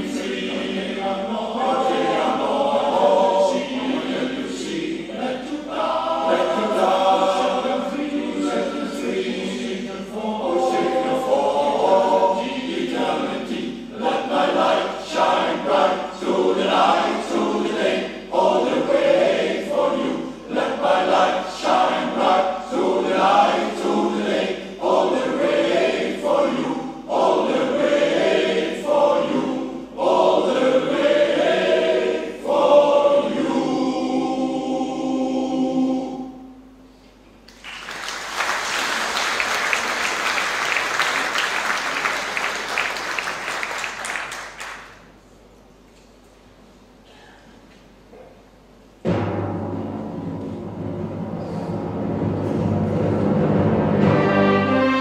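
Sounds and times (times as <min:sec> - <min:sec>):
male voice choir singing: 0:00.0 - 0:36.6
concert wind band: 0:00.0 - 0:37.4, 0:49.1 - 0:55.0.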